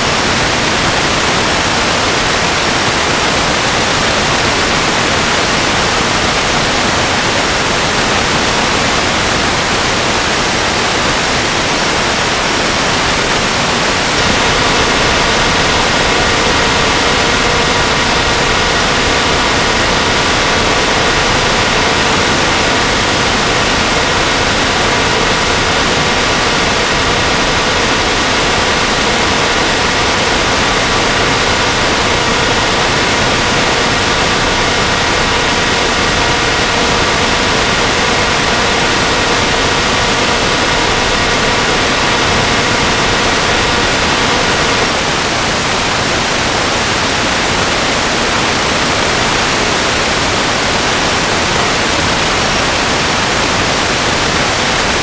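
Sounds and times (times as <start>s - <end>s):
static hiss: 11.9s - 45.0s.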